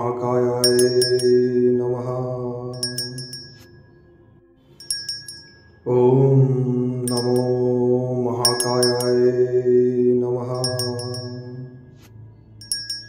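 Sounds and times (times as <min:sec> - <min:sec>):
person chanting: 0:00.0 - 0:03.6, 0:05.9 - 0:12.0
bright chimes: 0:00.6 - 0:01.8, 0:02.8 - 0:06.0, 0:07.1 - 0:07.8, 0:08.4 - 0:09.6, 0:10.6 - 0:13.0.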